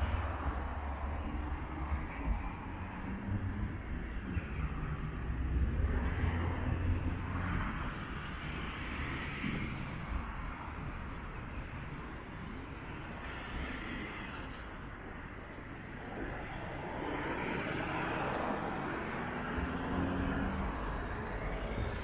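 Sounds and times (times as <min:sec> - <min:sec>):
passing cars and tyre noise: 0:00.0 - 0:22.0.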